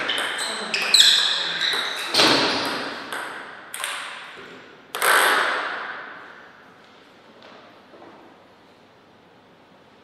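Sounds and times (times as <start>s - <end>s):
table tennis ball clacks echoing: 2.5s - 6.4s.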